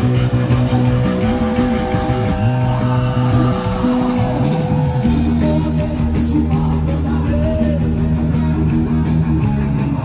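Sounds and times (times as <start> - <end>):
gliding lead guitar notes: 0.0 - 10.0
live rock band playing loudly: 0.0 - 10.0.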